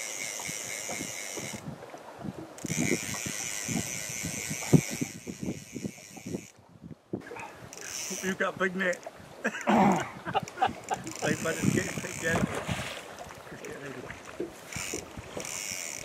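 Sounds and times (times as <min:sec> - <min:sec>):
rod and reel knocks: 0:00.0 - 0:01.6, 0:02.4 - 0:06.6, 0:10.4 - 0:12.6, 0:13.2 - 0:16.0
fly reel drag screaming: 0:07.7 - 0:08.4, 0:14.6 - 0:16.0.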